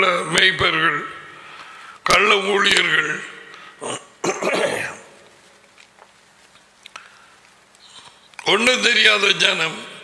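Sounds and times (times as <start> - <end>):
man coughing: 3.8 - 5.0.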